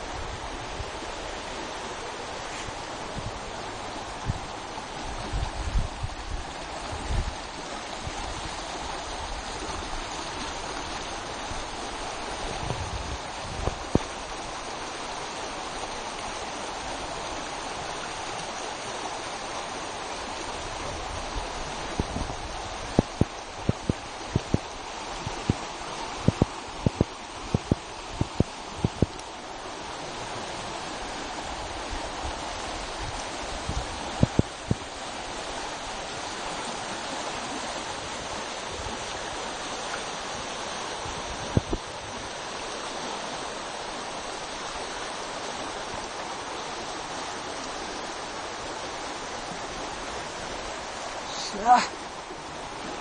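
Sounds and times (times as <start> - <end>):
river water over rapids: 0.0 - 53.0.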